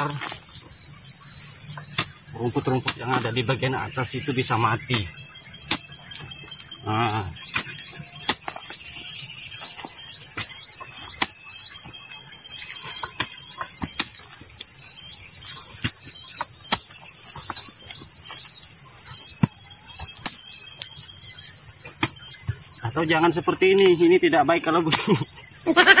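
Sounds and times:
insect chorus trilling: 0.0 - 26.0
hoe chopping soil: 5.6 - 6.3, 7.1 - 8.8, 12.8 - 14.6, 15.7 - 17.6, 19.3 - 20.9.

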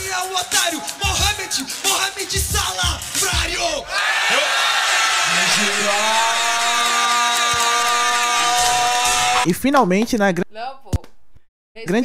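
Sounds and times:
crowd noise: 3.9 - 9.5.

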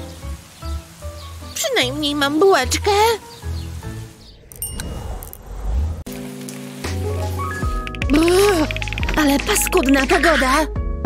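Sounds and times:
steady rain: 0.0 - 4.2
background music with held notes: 0.0 - 4.3, 6.1 - 11.0.

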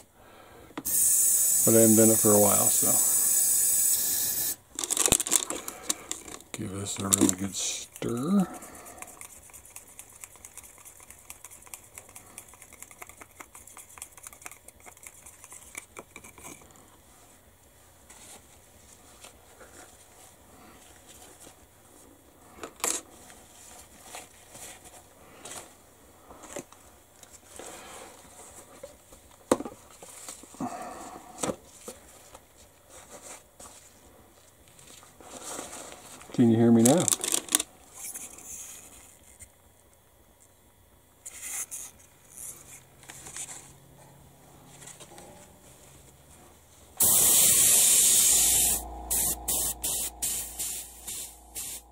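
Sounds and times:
airbrush burst with hum: 0.9 - 4.6, 47.0 - 51.9
paint clicks and scrapes: 4.8 - 17.1.

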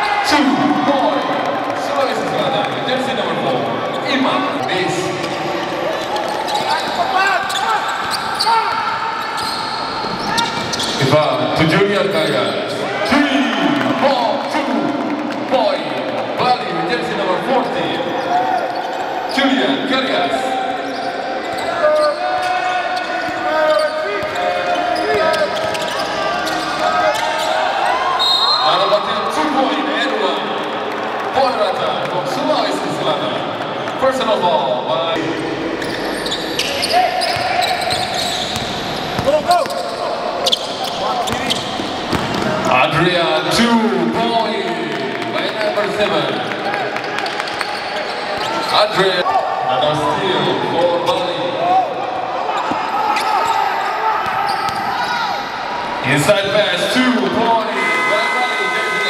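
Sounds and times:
basketball bouncing on hardwood: 42.1 - 42.5.

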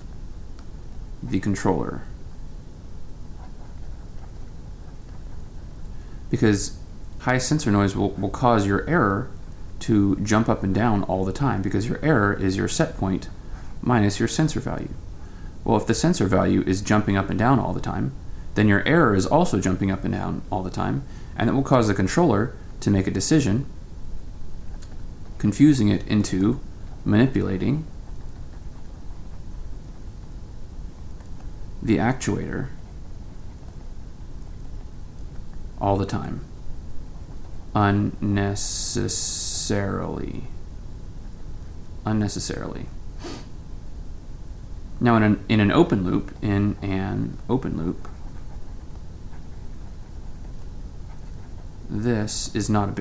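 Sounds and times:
low steady rumble: 0.0 - 53.0
stylus scratching on tablet: 3.2 - 6.0, 15.9 - 40.0, 45.0 - 53.0.

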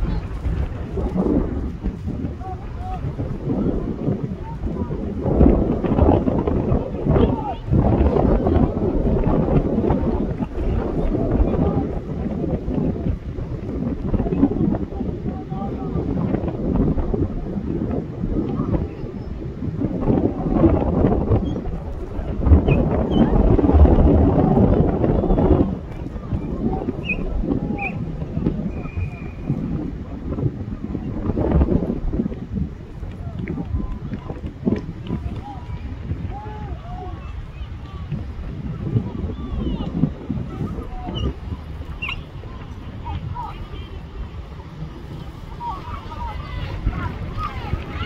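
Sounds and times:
wind buffeting microphone: 0.0 - 48.0
distant voices calling out: 32.8 - 48.0.

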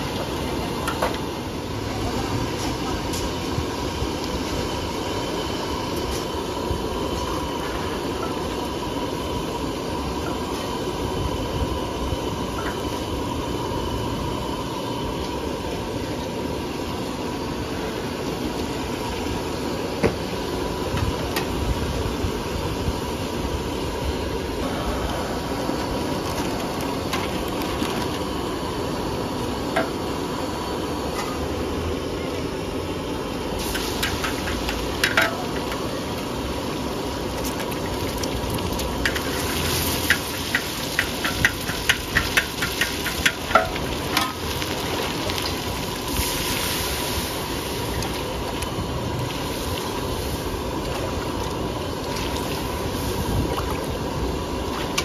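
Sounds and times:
gas burner rushing: 0.0 - 55.0.

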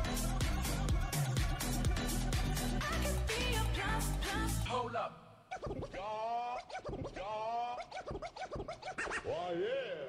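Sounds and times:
dance music: 0.0 - 4.9
turntable scratching of vocal sample: 5.5 - 10.0.

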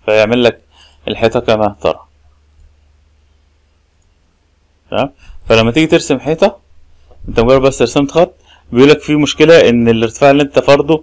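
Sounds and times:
low steady hum: 0.0 - 11.0
man's voice: 4.9 - 6.6, 7.2 - 11.0.

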